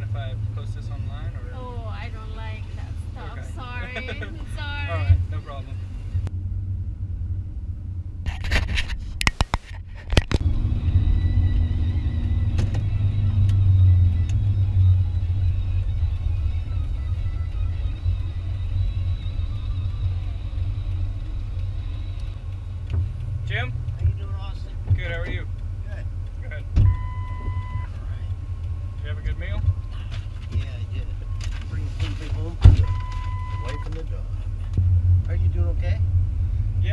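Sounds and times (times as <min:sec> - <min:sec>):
pickup truck engine and road rumble: 0:00.0 - 0:36.9
short beep: 0:26.8 - 0:27.9, 0:32.8 - 0:33.9.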